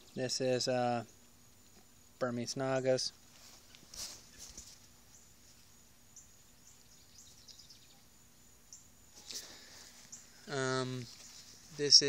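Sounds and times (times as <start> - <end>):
high insect drone: 0.0 - 12.0
leaves rustling: 2.5 - 6.9, 9.1 - 12.0.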